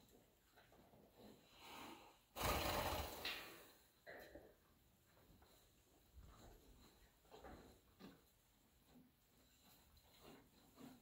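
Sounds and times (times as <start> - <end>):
horse snorting: 2.4 - 3.7.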